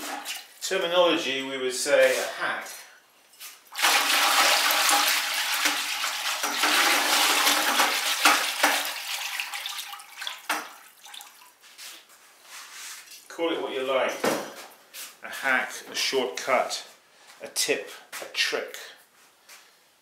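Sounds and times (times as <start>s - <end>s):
whisk sloshing liquid in bucket: 3.8s - 11.5s.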